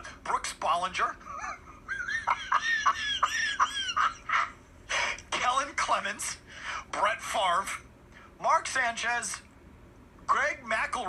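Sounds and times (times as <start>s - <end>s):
man cackling laughter: 1.2s - 4.6s.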